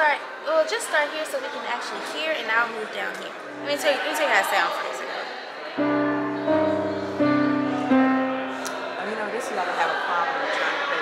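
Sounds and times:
electronic keyboard chords: 0:03.4 - 0:04.4, 0:05.8 - 0:09.1.

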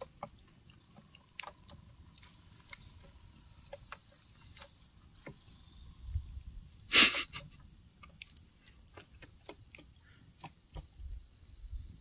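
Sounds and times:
claws scrabbling on plastic: 0:00.0 - 0:05.4, 0:08.0 - 0:11.2.

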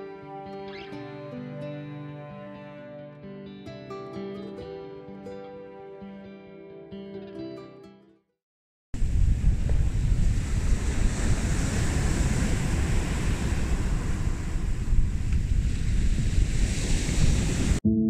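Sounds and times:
surf washing onto beach: 0:09.0 - 0:17.8
wind buffeting microphone: 0:09.0 - 0:17.8.

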